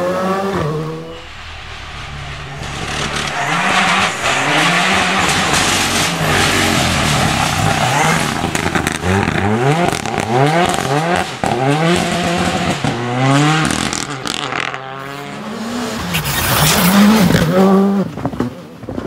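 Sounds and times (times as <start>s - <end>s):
rally car engine revving: 0.0s - 19.0s.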